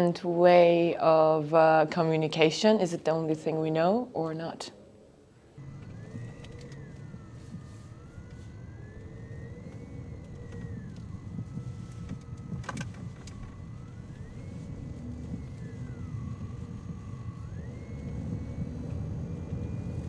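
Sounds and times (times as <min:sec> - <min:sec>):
distant siren wailing: 0:00.6 - 0:20.0
car road and engine rumble: 0:05.6 - 0:20.0.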